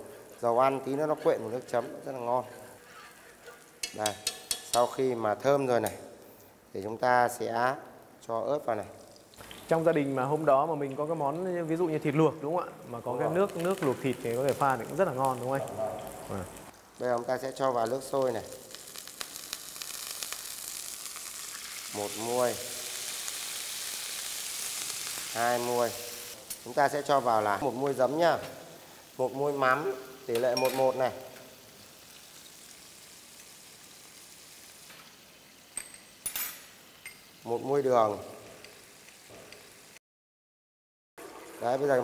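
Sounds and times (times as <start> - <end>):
oil sizzling in a frying pan: 0.0 - 6.7, 7.9 - 40.0
oil crackling: 0.1 - 7.1, 8.5 - 35.8
water pouring into a pan: 8.8 - 26.4, 28.7 - 35.8, 41.2 - 42.0.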